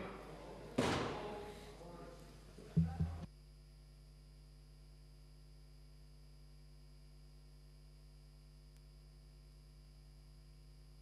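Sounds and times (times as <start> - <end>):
sharp ringing knock: 2.8 - 3.3.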